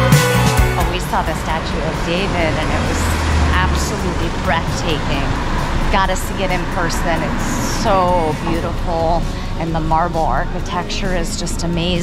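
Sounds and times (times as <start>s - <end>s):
people talking: 0.8s - 12.0s
vehicle engine rumble passing: 0.8s - 12.0s.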